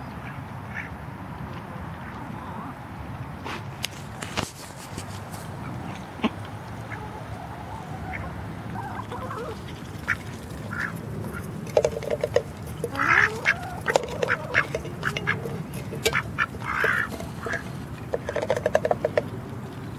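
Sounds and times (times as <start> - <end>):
bills pecking at food: 3.4 - 19.9
ducks quacking: 5.4 - 19.2.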